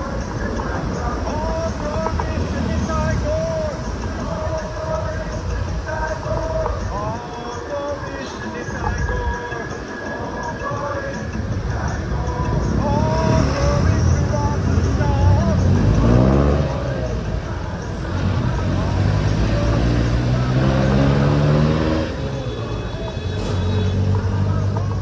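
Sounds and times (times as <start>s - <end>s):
vehicle engines running close: 0.0s - 6.8s, 11.7s - 25.0s
rush of traffic noise: 0.0s - 25.0s
vehicle speeding up: 14.8s - 17.2s, 18.1s - 22.4s.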